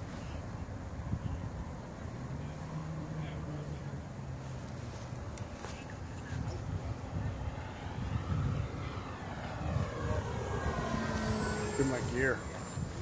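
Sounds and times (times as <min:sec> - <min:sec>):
wind rumble on microphone: 0:00.0 - 0:02.0, 0:04.8 - 0:13.0
model airplane motor: 0:07.7 - 0:13.0.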